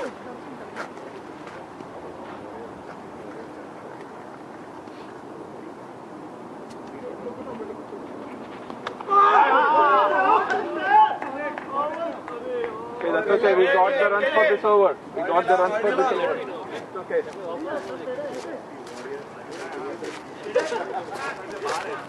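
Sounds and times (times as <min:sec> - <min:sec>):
faint background chatter: 0:00.0 - 0:22.0
people shouting loudly: 0:09.1 - 0:12.1.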